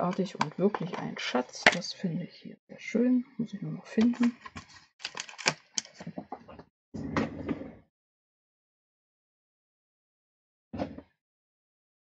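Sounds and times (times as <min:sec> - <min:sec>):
plastic clicks and rattles: 0:00.0 - 0:01.9, 0:04.0 - 0:06.4.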